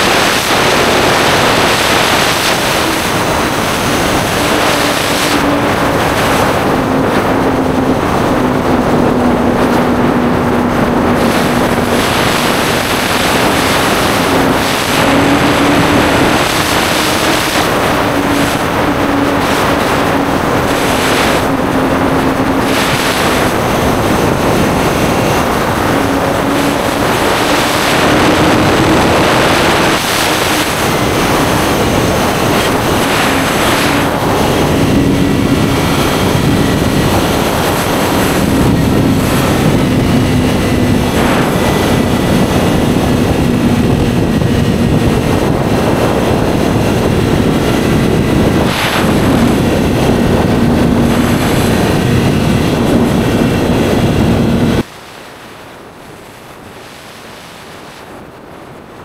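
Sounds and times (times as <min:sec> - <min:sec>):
motorcycle engine running: 0:00.0 - 0:54.8
loud wind rush: 0:00.0 - 0:59.0.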